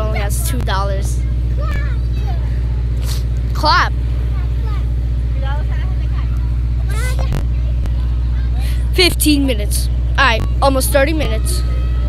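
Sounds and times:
faint voices: 0.0 - 12.0
truck engine idling: 0.0 - 12.0.

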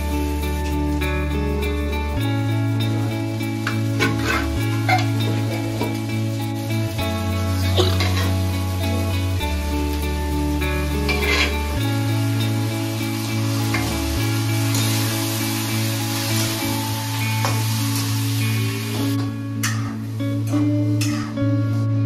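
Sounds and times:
food sizzling in a pan: 0.0 - 21.9
background music with sustained notes: 0.0 - 22.0
metal spatula scraping: 4.0 - 5.4, 11.0 - 11.8.

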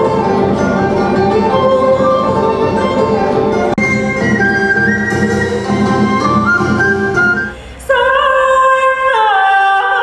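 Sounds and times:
flute-like melody: 0.0 - 7.6
plucked strings: 0.0 - 7.6
woman singing: 7.5 - 10.0.

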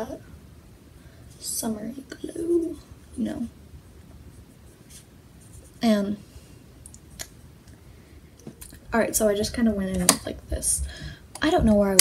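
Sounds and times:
person speaking: 1.3 - 3.6, 4.9 - 6.3, 8.6 - 12.0.

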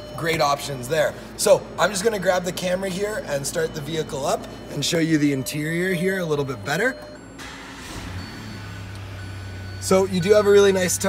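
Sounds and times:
car engine idling: 0.6 - 11.0.

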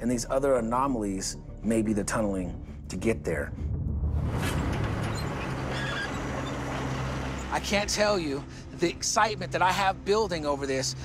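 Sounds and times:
excavator engine and digging: 4.3 - 8.3.

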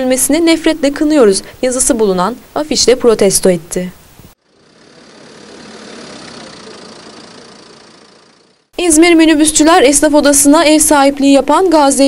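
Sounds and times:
vehicle engine running: 4.4 - 8.8.

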